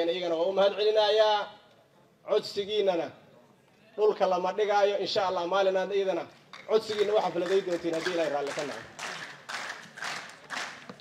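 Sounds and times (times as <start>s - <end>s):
rhythmic clapping with echo: 6.4s - 11.0s.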